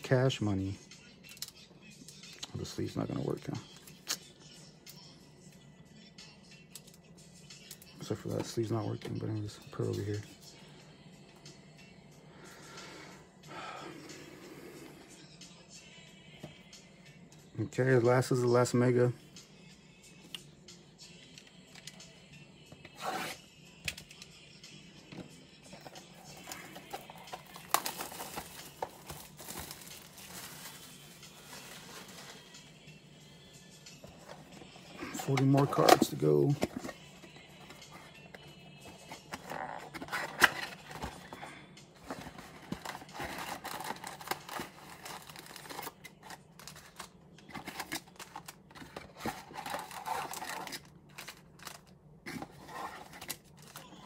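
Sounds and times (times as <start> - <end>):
faint music: 0.0 - 54.0
shuffling foil packs: 25.8 - 32.6, 42.0 - 53.9
plastic wrap tearing and crinkling: 26.8 - 32.5, 49.2 - 51.8.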